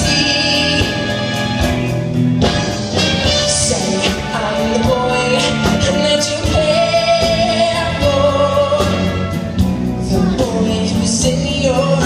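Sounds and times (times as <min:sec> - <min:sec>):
big band playing: 0:00.0 - 0:12.0
man singing: 0:00.0 - 0:12.0.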